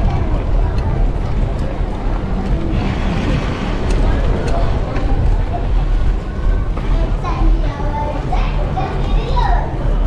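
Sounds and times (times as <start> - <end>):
indistinct voices: 0.0 - 10.0
steady low rumble: 0.0 - 10.0.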